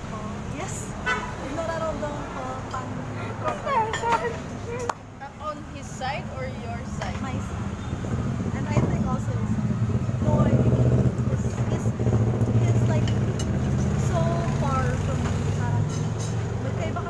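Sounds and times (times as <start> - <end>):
women talking: 0.0 - 7.6, 8.5 - 17.0
vehicle engine humming: 0.0 - 17.0
women laughing: 3.2 - 4.9.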